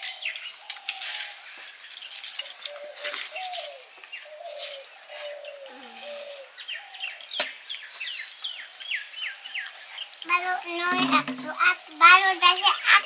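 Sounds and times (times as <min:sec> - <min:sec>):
birds chirping: 0:00.0 - 0:13.0.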